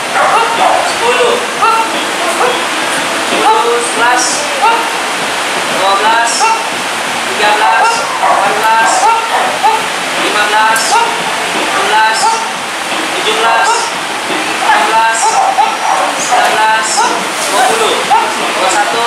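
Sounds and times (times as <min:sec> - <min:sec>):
person calling commands: 0:00.0 - 0:05.1, 0:05.9 - 0:06.8, 0:07.4 - 0:12.6, 0:13.2 - 0:14.0, 0:14.6 - 0:19.0
loud rushing hiss: 0:00.0 - 0:19.0.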